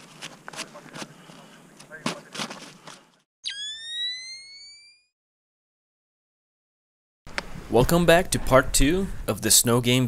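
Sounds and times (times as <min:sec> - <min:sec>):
crunching footsteps in snow: 0:00.0 - 0:03.2
electronic tone gliding upward: 0:03.4 - 0:05.1.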